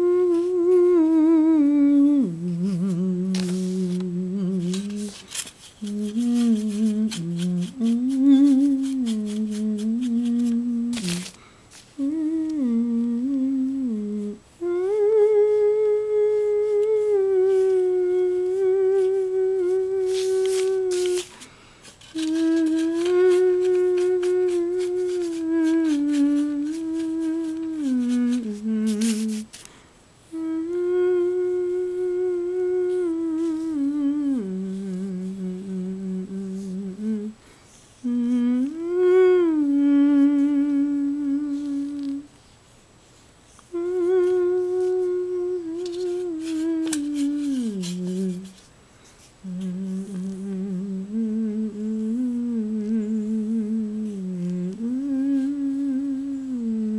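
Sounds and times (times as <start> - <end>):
person humming a slow tune: 0.0 - 42.3, 43.5 - 48.7, 49.4 - 56.9.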